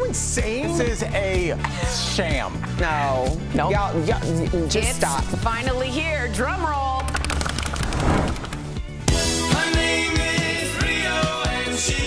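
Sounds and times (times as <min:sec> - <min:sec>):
music: 0:00.0 - 0:12.0
rapid drum roll: 0:07.4 - 0:08.8.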